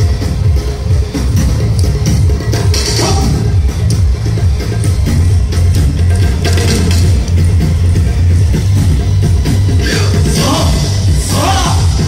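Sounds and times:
loud dance music: 0:00.0 - 0:12.0
steady low drum beat: 0:00.0 - 0:12.0.

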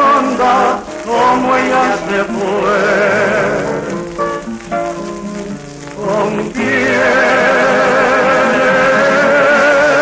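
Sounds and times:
man singing with vibrato: 0:00.0 - 0:04.0, 0:06.0 - 0:10.0
plucked guitars: 0:00.0 - 0:10.0.

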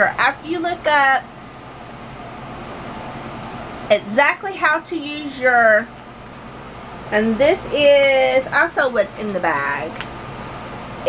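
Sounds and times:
air conditioner running: 0:00.0 - 0:11.0
electric fans running: 0:00.0 - 0:11.0.

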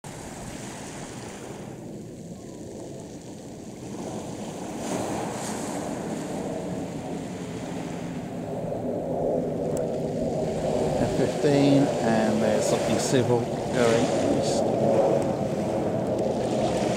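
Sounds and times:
distant jet engine roar: 0:00.1 - 0:16.9.

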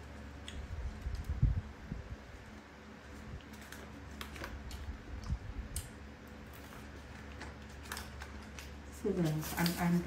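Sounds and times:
bamboo basket clicking and creaking: 0:03.1 - 0:10.0.

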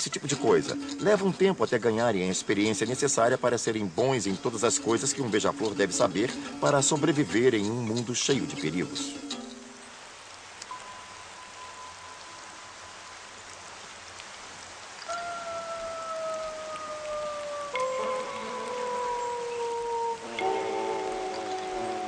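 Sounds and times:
soft background music: 0:00.0 - 0:10.0
steady rain falling: 0:00.0 - 0:22.0.

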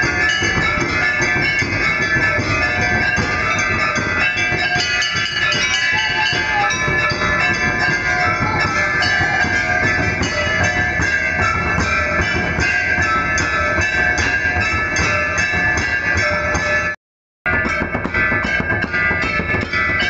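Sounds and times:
bell-like ringing tones: 0:00.0 - 0:20.0
percussion: 0:00.0 - 0:20.0.

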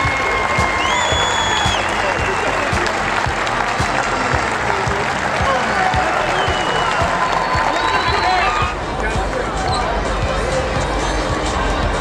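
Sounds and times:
crowd chatter: 0:00.0 - 0:12.0
music: 0:00.0 - 0:12.0.

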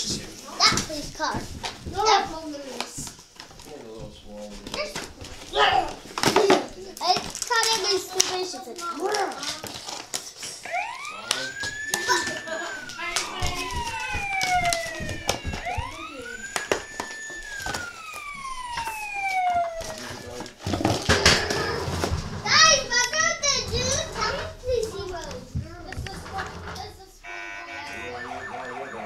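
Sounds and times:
siren wailing: 0:10.6 - 0:20.6, 0:27.2 - 0:29.0
knocks and clatter: 0:19.8 - 0:27.1
fast high warble: 0:27.3 - 0:29.0.

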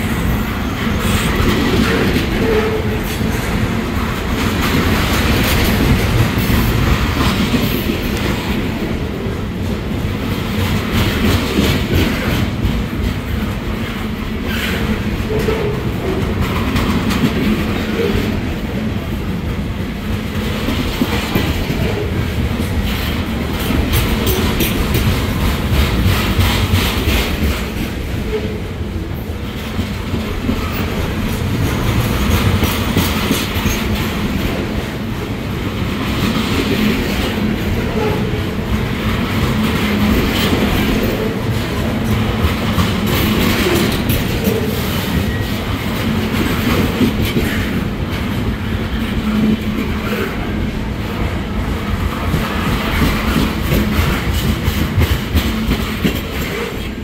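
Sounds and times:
freight train rumbling past: 0:00.0 - 0:57.0
wheels clacking over rail joints: 0:00.0 - 0:57.0.

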